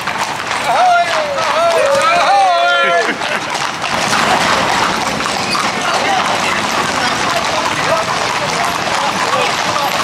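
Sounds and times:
hooves clip-clopping on road: 0.0 - 10.0
people talking: 0.5 - 10.0.

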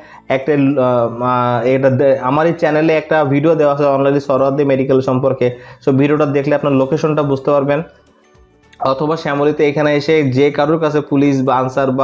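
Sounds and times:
man talking: 0.0 - 7.9, 8.8 - 12.0.

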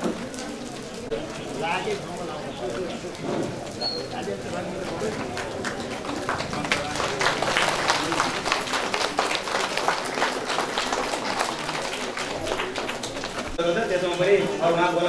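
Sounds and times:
people clapping: 0.0 - 13.6
background talk: 0.0 - 15.0.

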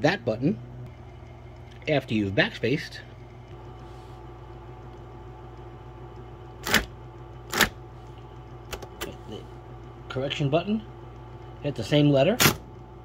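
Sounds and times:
typewriter motor hum: 0.9 - 13.0
typewriter mechanical strikes: 6.6 - 6.9, 7.5 - 7.8, 12.3 - 12.7
typewriter key click: 12.4 - 12.6.

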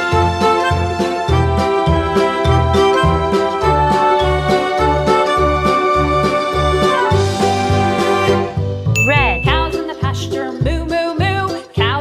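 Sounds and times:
bright ding: 9.0 - 9.9
upbeat keyboard music: 9.0 - 10.4.

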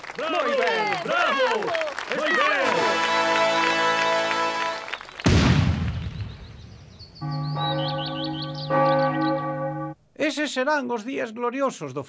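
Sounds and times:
cannon shot with rumble: 5.3 - 6.9
sustained music with bell-like tones: 7.2 - 10.0.

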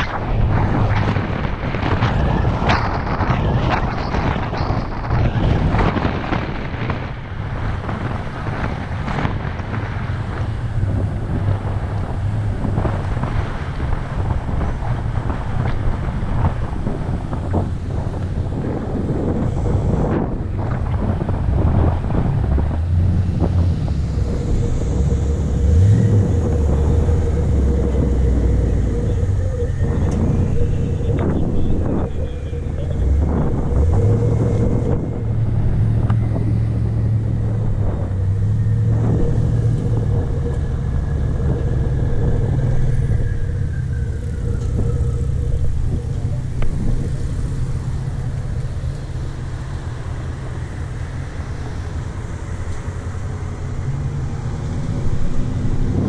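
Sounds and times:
motorcycle engine revving: 0.0 - 56.0
wind and road rush: 0.0 - 56.0.

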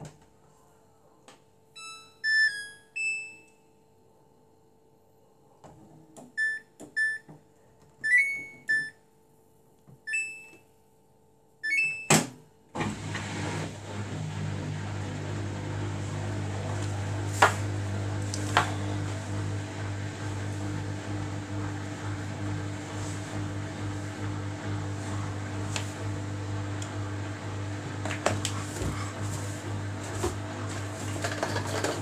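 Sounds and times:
washing machine chime tune: 1.8 - 3.7, 6.4 - 7.3, 8.0 - 9.0, 10.1 - 10.6, 11.6 - 12.1
short beeps: 6.4 - 7.3, 8.0 - 9.0
washing machine hum and whir: 11.6 - 32.0.

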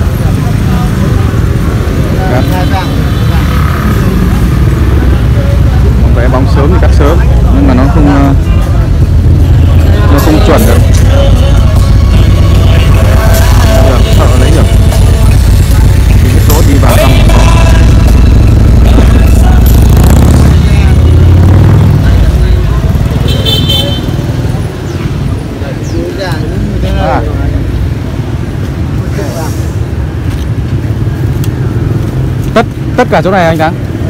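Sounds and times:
street chatter: 0.0 - 34.0
motorcycle engine running: 3.1 - 25.4.

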